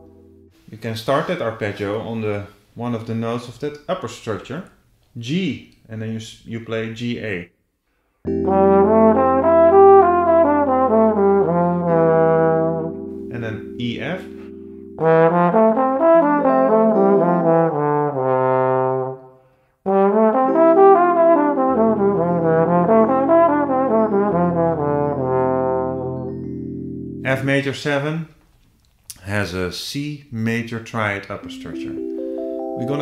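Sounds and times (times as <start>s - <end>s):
held backing chord: 0.0s - 1.2s, 8.2s - 19.3s, 19.9s - 28.0s, 31.4s - 33.0s
slide trombone playing jazz phrases: 0.0s - 2.1s, 8.3s - 26.4s.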